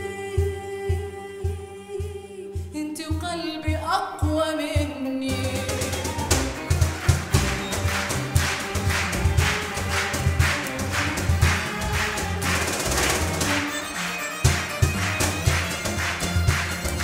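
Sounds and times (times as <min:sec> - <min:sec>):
instrumental ensemble playing: 0:05.4 - 0:17.0
hand claps: 0:05.8 - 0:17.0.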